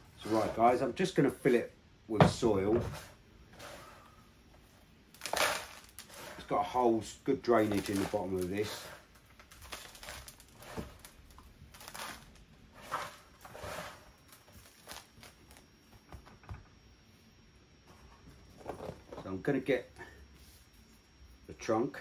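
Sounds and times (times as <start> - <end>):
soil scraping plastic planter: 5.2 - 11.2, 11.8 - 14.1.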